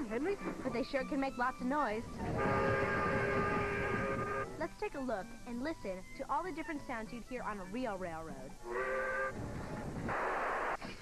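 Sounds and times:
steam locomotive whistle: 2.1 - 4.7, 8.6 - 9.4.

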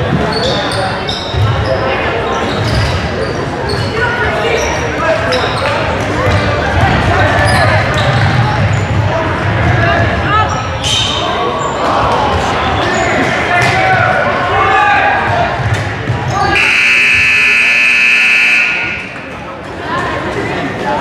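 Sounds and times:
players' voices echoing: 0.0 - 21.0
scoreboard buzzer blast: 16.6 - 19.2.

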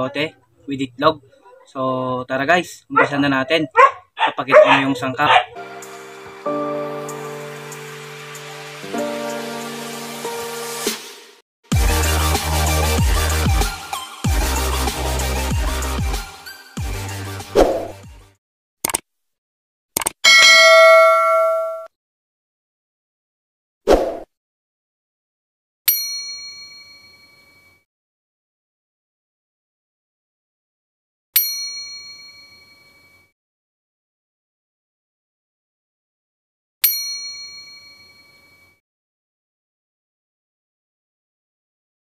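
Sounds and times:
bright bell ding: 20.3 - 21.9, 25.9 - 27.8, 31.4 - 33.2, 36.9 - 38.8.

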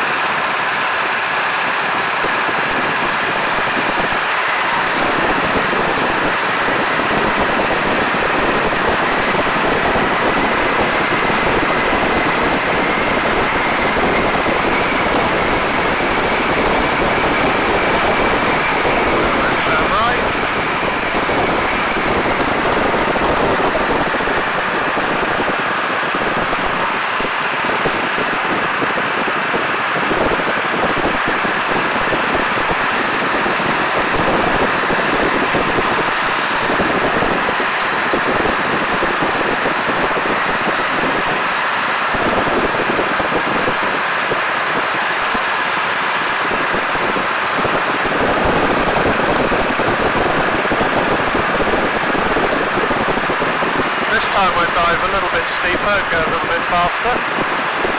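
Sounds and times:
biplane engine: 0.0 - 57.9
slipstream wind rushing: 0.0 - 57.9.

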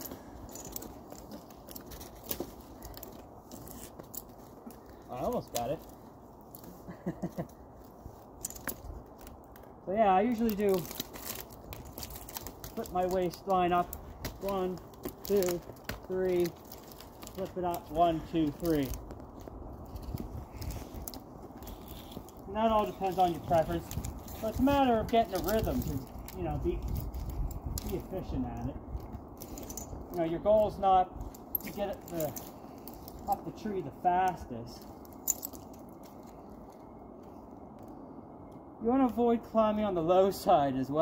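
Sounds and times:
climbing spurs crunching on trunk: 0.0 - 38.0.

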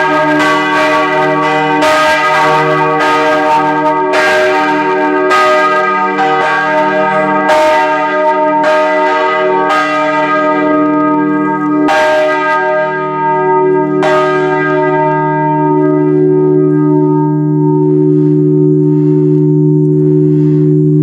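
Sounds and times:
church bells pealing: 0.0 - 20.3.

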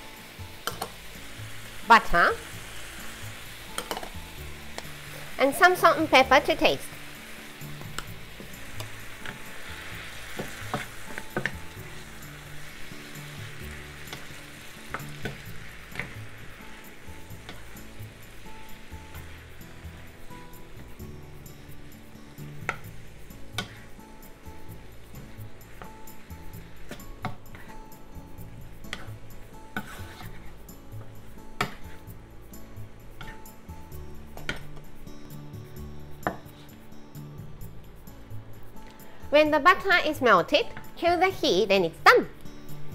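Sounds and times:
vegetables sizzling in a frying pan: 0.0 - 35.6
spatula clicking against pan: 0.6 - 1.0, 3.8 - 4.1.

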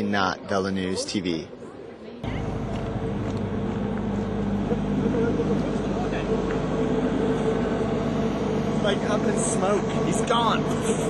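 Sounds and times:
diesel bus engine running: 2.2 - 11.0.

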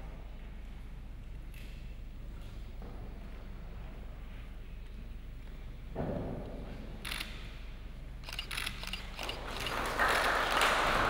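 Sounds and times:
camera shutters clicking: 8.2 - 9.8.

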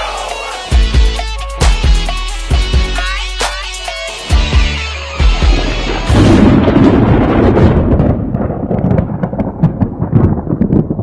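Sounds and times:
loud low rumble with crackles: 5.5 - 11.0.

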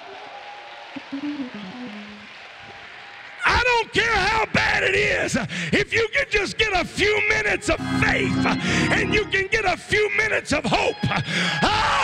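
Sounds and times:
low instrument notes: 7.7 - 9.5.

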